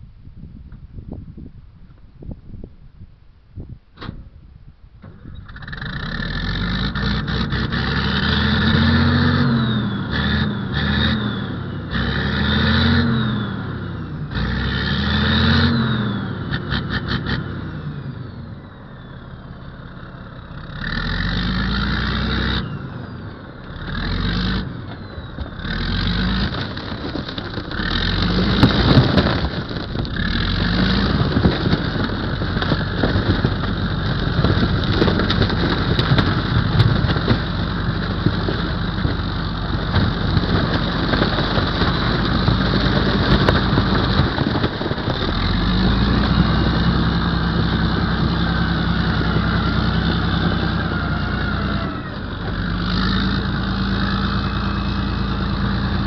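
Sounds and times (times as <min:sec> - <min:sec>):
diesel engine revving: 0:05.2 - 0:56.0.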